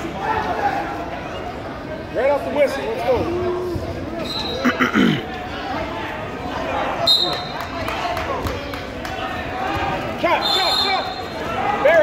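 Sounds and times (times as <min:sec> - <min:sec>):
crowd chatter and shouts: 0:00.0 - 0:12.0.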